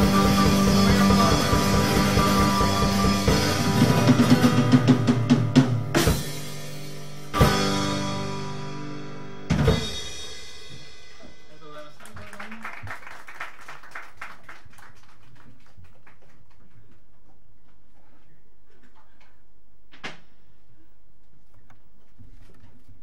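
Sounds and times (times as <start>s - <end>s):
full-band hits with cymbals: 0.0s - 11.8s
rapid drum fill: 0.0s - 11.8s
live band playing: 0.0s - 12.0s.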